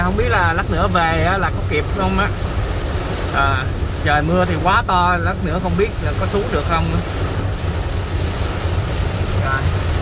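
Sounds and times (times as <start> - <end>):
heavy rain on car roof: 0.0 - 10.0
moving car rumble: 0.0 - 10.0.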